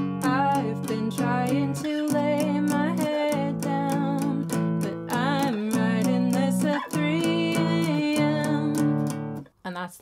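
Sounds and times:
woman singing: 0.0 - 9.4
acoustic guitar strumming: 0.0 - 9.5.

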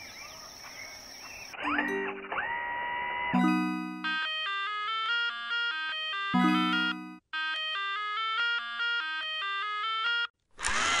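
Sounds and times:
chime-like electronic jingle: 1.6 - 2.4, 3.4 - 4.3, 6.4 - 7.2.

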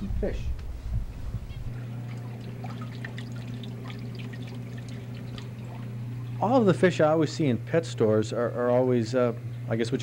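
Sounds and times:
water trickling and bubbling: 2.0 - 6.4
small water splashes: 2.1 - 6.4.

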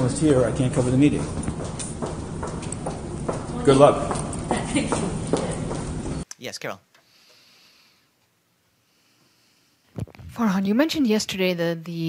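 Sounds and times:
footsteps on hard floor: 0.2 - 6.2.

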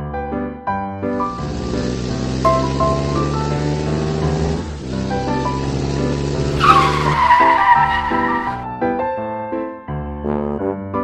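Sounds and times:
background music: 0.5 - 8.7
tire screech skid effect: 1.4 - 8.7.

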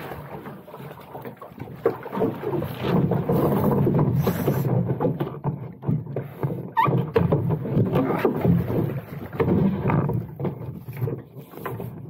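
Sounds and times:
water slapping against hull: 0.0 - 12.0
knocks from hull and fittings: 1.2 - 12.0.

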